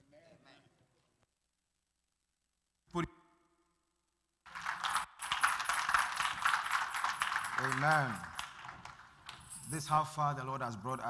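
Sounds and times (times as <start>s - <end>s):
crowd clapping: 4.5s - 9.6s.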